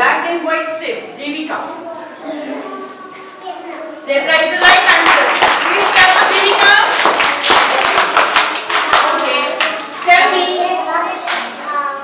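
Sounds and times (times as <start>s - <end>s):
people talking: 0.0s - 7.0s, 8.9s - 12.0s
people clapping: 4.3s - 10.5s, 11.2s - 11.6s.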